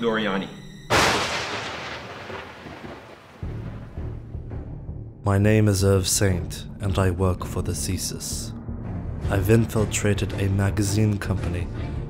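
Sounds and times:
loud boom with reverberant rumble: 0.9 - 4.1.

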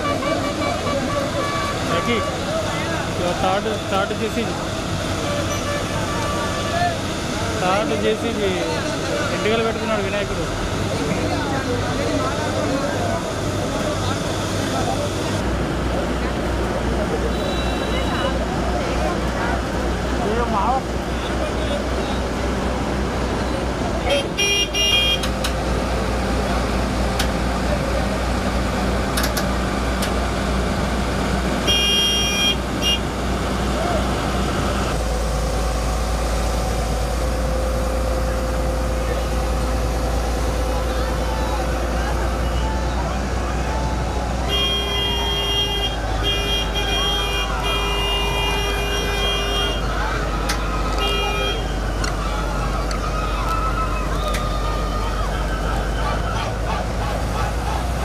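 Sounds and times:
high horn toots: 0.0 - 2.4, 31.6 - 33.2, 44.4 - 52.0
crowd chattering: 0.0 - 58.0
excavator diesel engine running: 0.0 - 58.0.

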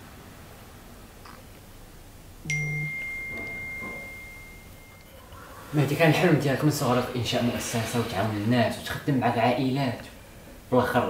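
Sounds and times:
high-pitched ding: 2.5 - 5.1.

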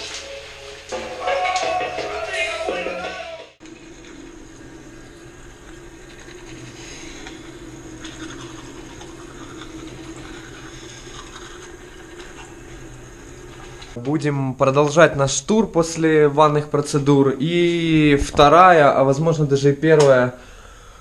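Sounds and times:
music: 0.0 - 3.6
running water rushing: 0.0 - 14.0.

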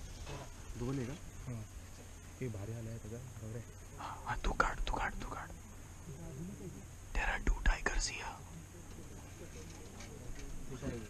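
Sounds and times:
people whispering: 3.4 - 11.0.

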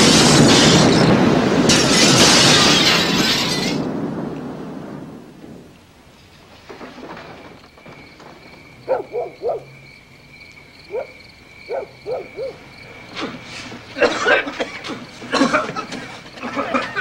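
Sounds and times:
debris and glass clattering: 0.0 - 4.0, 6.2 - 8.9
heavy rumble: 0.0 - 17.0.

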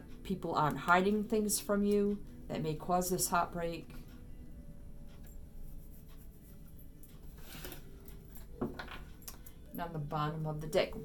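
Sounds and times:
faint background music: 0.0 - 11.0
cards sliding over table: 7.3 - 7.9.

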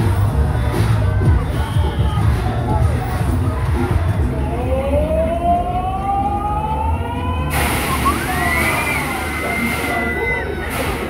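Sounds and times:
heavy low music beat: 0.0 - 8.4.

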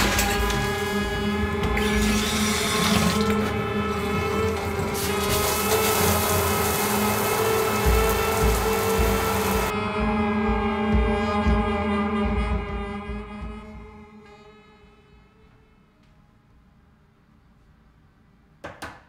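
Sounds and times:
background music with sustained tones: 0.0 - 17.4
shower water spray hissing: 4.0 - 9.7.

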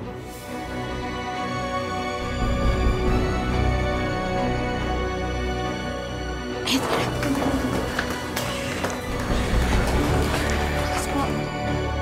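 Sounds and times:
tense dramatic music: 0.0 - 12.0.

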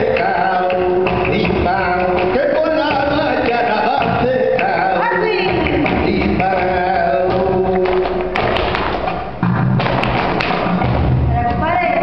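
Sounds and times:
sharp percussive strikes and thumps: 0.0 - 12.0.

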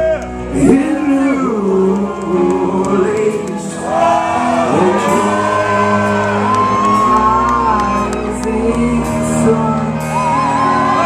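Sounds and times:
lead singer: 0.0 - 11.0
live rock band playing: 0.0 - 11.0.

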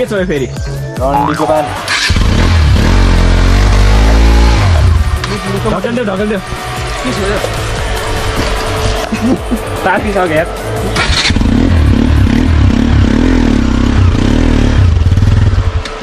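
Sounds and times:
motorcycle engine revving hard: 1.8 - 5.3, 10.9 - 15.8.

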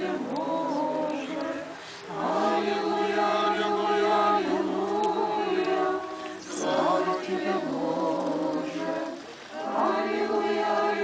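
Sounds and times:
group singing a cappella chant: 0.0 - 11.0.

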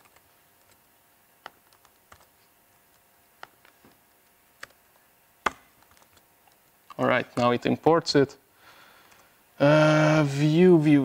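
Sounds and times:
laptop keystrokes: 1.4 - 2.3.

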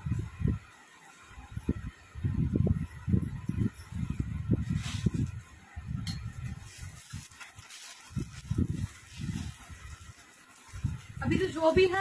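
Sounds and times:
faint rustle: 3.8 - 5.6, 6.4 - 11.8.

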